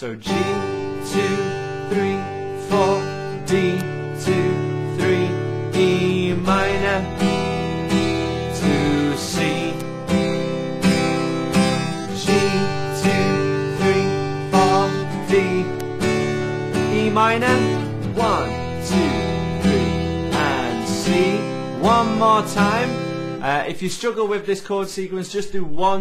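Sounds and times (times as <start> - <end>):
acoustic guitar strumming: 0.0 - 24.1.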